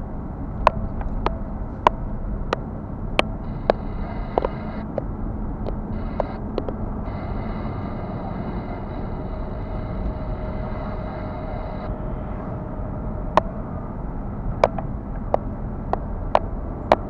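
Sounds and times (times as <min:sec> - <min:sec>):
car road and engine rumble: 0:00.0 - 0:17.0
faint high whine: 0:03.2 - 0:13.8.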